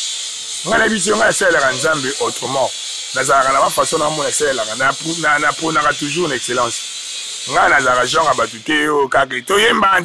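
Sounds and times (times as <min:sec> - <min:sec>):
steady background hiss: 0:00.0 - 0:10.0
man talking into a microphone: 0:00.6 - 0:06.8, 0:07.5 - 0:10.0.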